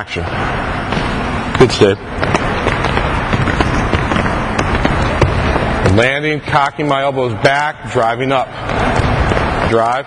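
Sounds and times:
echoing gym noise: 0:00.0 - 0:10.0.

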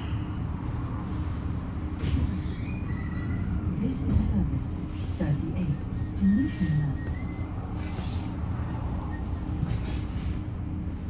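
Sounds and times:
electric bus humming: 0:00.0 - 0:11.0.

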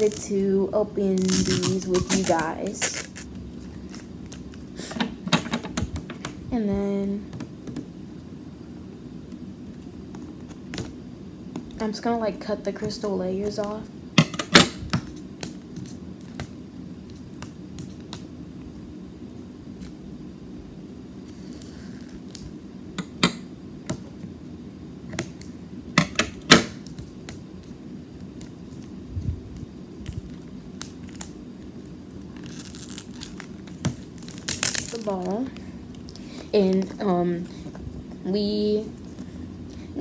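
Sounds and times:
plastic wrapping crinkling: 0:00.0 - 0:00.5, 0:01.2 - 0:04.6, 0:28.4 - 0:37.0.

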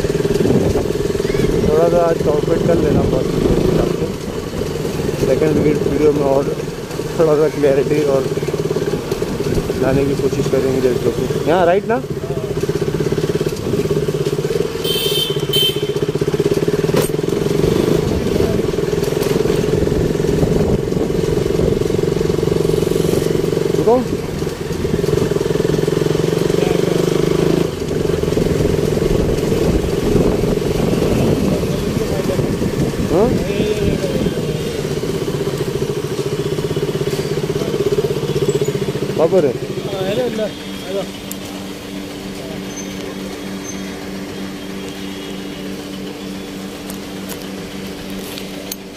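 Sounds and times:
motorcycle engine running: 0:00.0 - 0:48.9.

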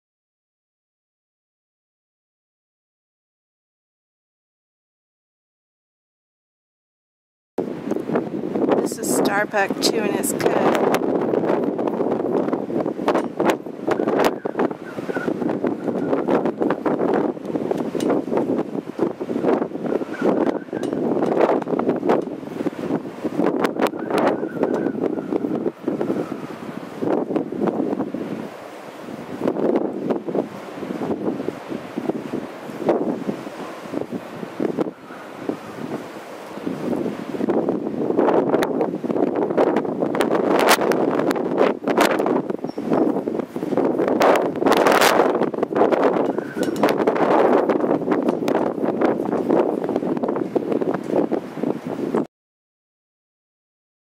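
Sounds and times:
wind blowing across microphone: 0:07.6 - 0:52.3
crackles and knocks: 0:44.2 - 0:47.1, 0:47.7 - 0:50.3.

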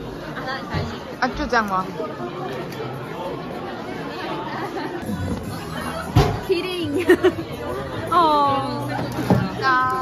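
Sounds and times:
crowd chatter indoors: 0:00.0 - 0:10.0.

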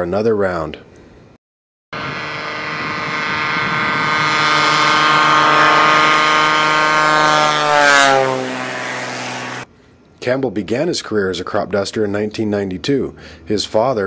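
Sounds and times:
airplane engine and propeller drone: 0:02.0 - 0:10.0.

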